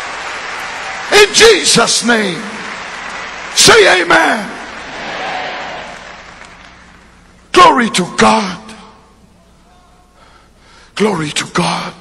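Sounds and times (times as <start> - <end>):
man inhaling: 10.2 - 11.0.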